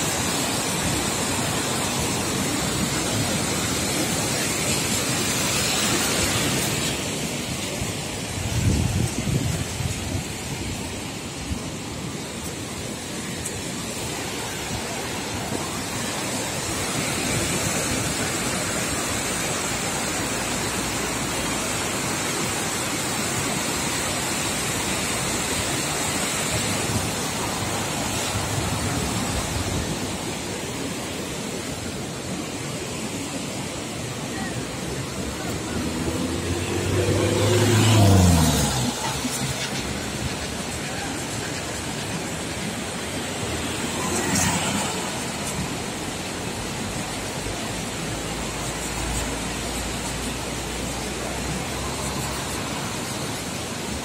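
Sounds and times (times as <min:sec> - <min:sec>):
water rushing over rapids: 0:00.0 - 0:54.0.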